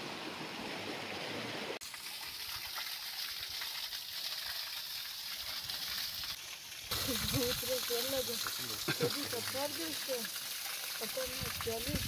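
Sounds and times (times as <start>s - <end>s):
water pouring and splashing: 0.0s - 12.0s
man speaking: 8.5s - 9.3s.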